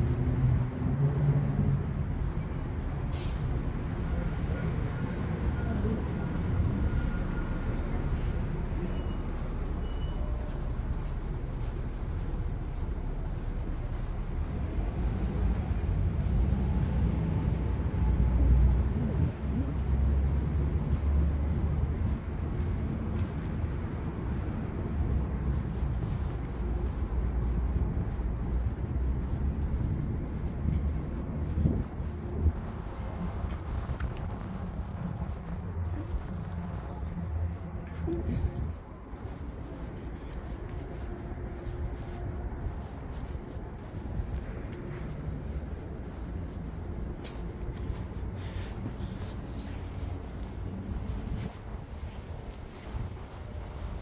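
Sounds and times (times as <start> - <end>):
city traffic rumble: 0.0 - 54.0.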